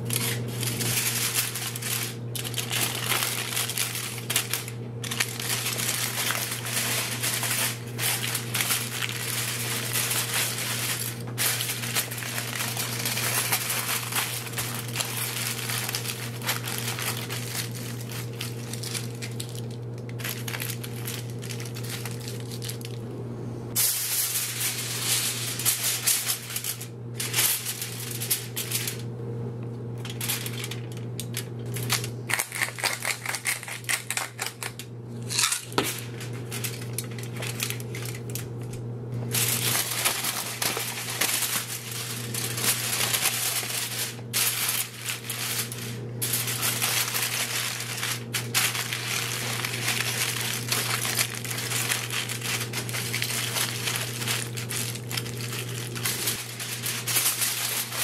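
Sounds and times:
aluminium foil crinkling: 0:00.0 - 0:23.0, 0:23.8 - 0:29.1, 0:29.8 - 0:58.0
steady low hum: 0:00.0 - 0:58.0.

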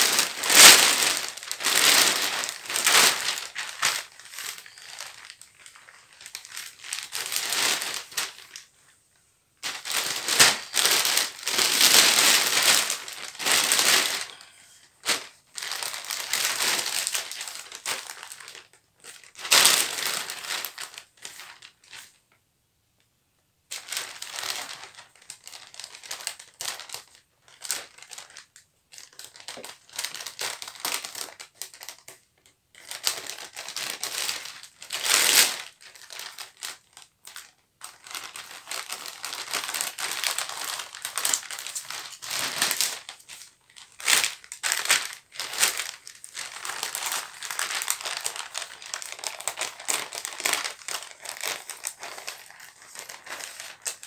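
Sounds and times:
plastic sheet crinkling: 0:00.0 - 0:22.3, 0:23.7 - 0:54.0.

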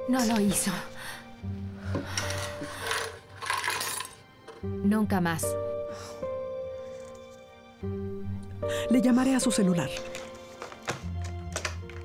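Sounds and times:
soft background music: 0:00.0 - 0:12.0
broken glass clinking on tile: 0:03.0 - 0:04.2.

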